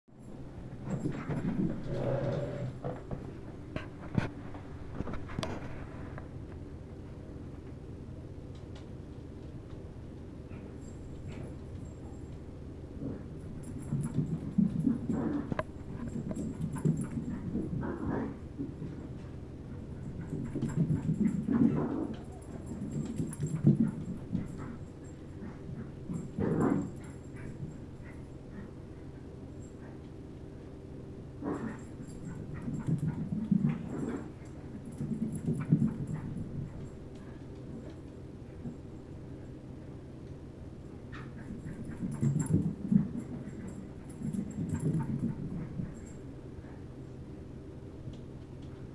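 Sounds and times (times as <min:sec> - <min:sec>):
steady low hum: 0:00.1 - 0:48.9
dog grunting and huffing: 0:01.0 - 0:03.2, 0:31.4 - 0:36.4.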